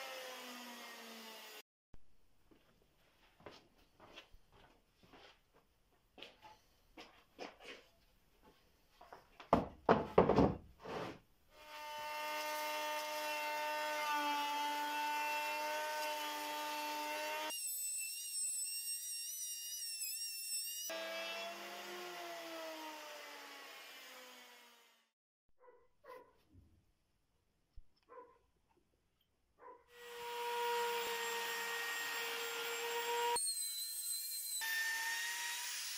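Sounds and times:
boards knocking: 9.5 - 10.7
electric router whining: 20.7 - 24.9.

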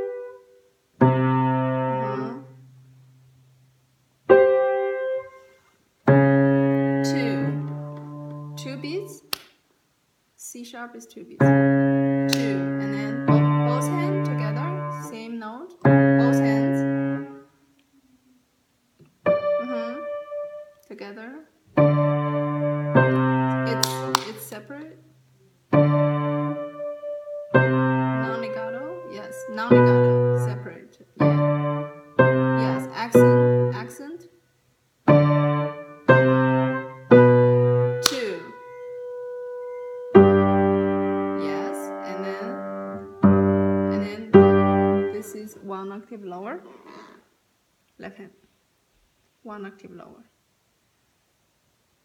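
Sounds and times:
piano playing heavy chords: 0.0 - 0.4, 21.8 - 24.2, 25.7 - 30.5, 31.2 - 33.8, 35.1 - 45.3.

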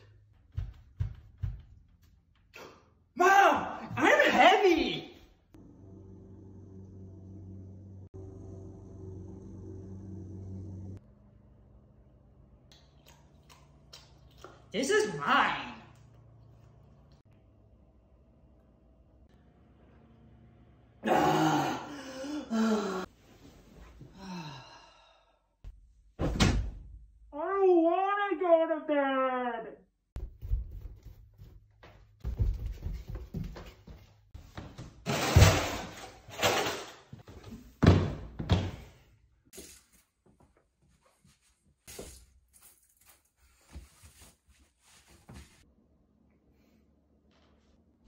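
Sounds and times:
man sighing: 21.1 - 23.1, 24.1 - 25.4.

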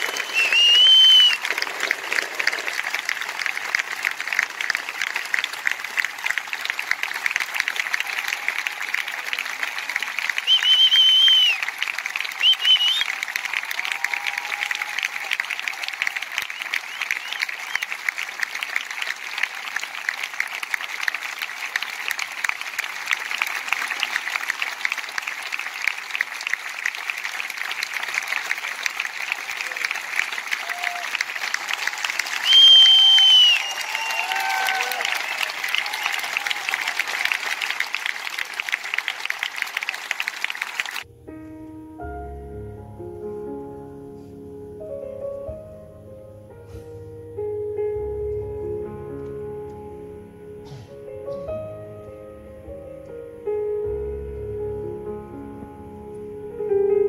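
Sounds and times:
high whistles: 0.0 - 1.5, 10.4 - 11.7, 12.3 - 13.2, 16.4 - 18.0, 32.3 - 36.2
audience applauding: 0.0 - 41.1.

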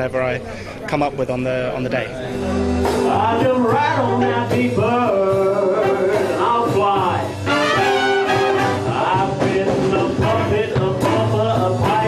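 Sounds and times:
big band playing jazz: 1.8 - 12.0
man singing into a microphone: 2.9 - 12.0.

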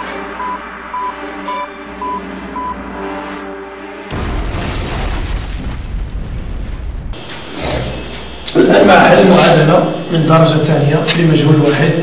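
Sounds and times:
short electronic beeps: 0.0 - 3.6
synthesized drone: 0.0 - 4.4, 7.1 - 12.0.

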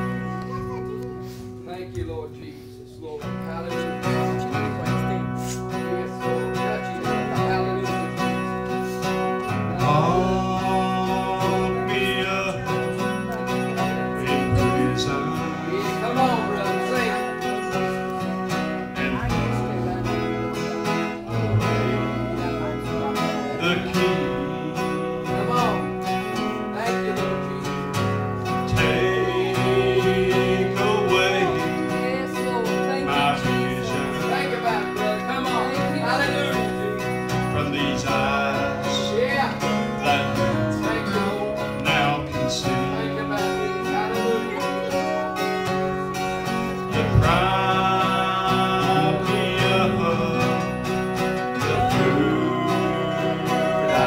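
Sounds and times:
acoustic guitar strumming: 0.0 - 54.0
electric guitar lead melody: 0.0 - 54.0.

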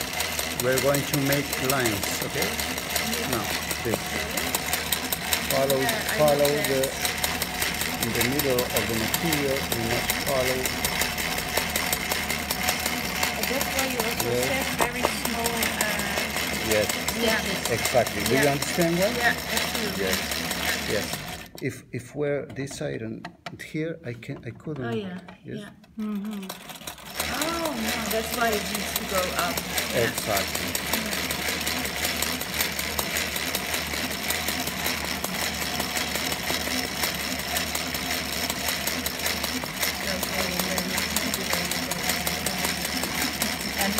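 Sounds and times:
sewing machine stitching: 0.0 - 21.8, 24.7 - 43.9.

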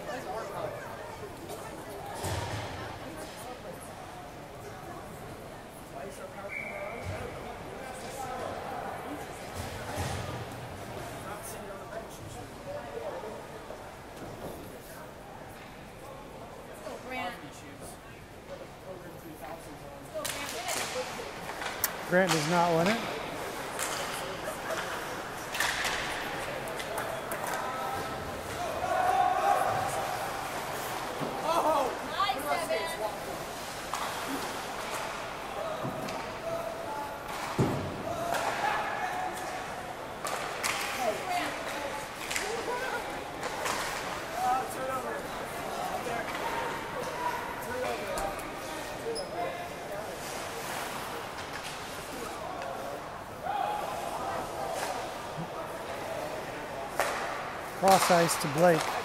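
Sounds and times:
players and spectators voices: 0.0 - 59.0
pucks and players hitting boards: 9.4 - 10.9, 20.2 - 29.0, 33.5 - 36.6, 37.2 - 48.9, 56.9 - 59.0.

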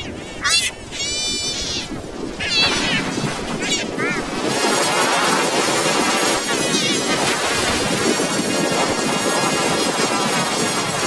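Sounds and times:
pitch-shifted warbling voices: 0.0 - 4.6
dense noisy wash: 0.0 - 11.0.

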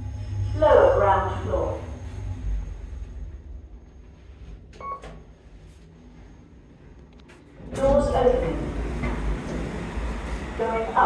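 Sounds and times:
lift car ride rumble: 0.0 - 11.0.

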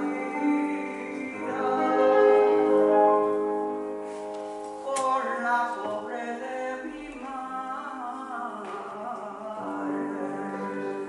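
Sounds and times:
grand piano chords and notes: 0.0 - 11.0.

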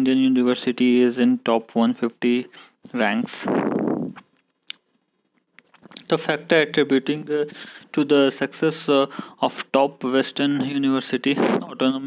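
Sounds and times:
man speaking: 0.0 - 3.5, 5.9 - 12.0.

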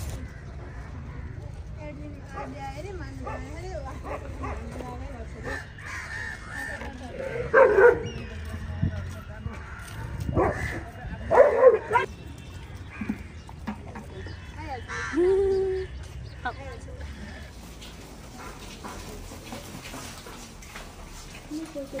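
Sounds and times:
dogs barking: 2.3 - 4.8, 7.2 - 8.3, 10.2 - 12.1, 18.3 - 19.1.

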